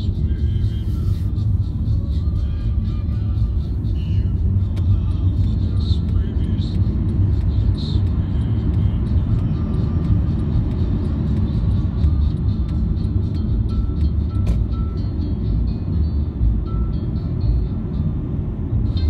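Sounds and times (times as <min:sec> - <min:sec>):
car driving engine and tyre noise: 0:00.0 - 0:19.0.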